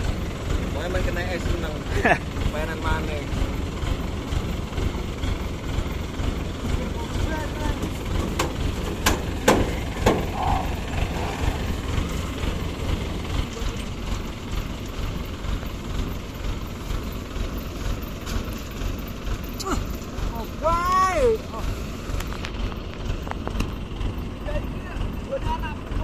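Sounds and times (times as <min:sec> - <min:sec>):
harvester engine running: 0:00.0 - 0:26.0
sharp knocks: 0:07.8 - 0:10.4.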